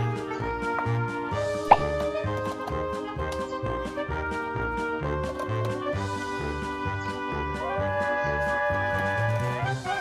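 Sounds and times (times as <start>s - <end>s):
playful music with bouncy bass: 0.0s - 10.0s
rising pop sound effect: 1.7s - 2.1s.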